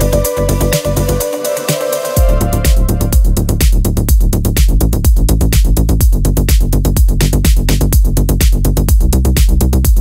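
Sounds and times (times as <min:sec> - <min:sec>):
fast ticking hi-hats: 0:00.0 - 0:10.0
house and techno music: 0:00.0 - 0:10.0
kick drum beat: 0:02.2 - 0:10.0.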